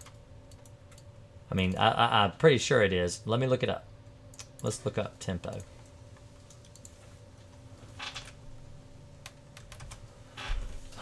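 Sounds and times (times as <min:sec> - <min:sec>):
keystrokes on computer keyboard: 0:00.0 - 0:01.8, 0:05.4 - 0:07.0, 0:09.2 - 0:10.0.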